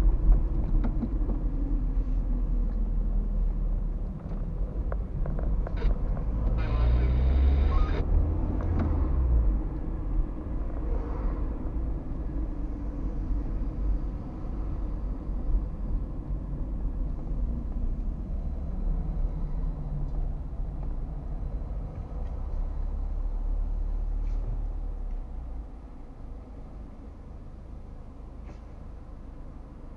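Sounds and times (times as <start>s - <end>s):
car engine and road rumble: 0.0s - 29.9s.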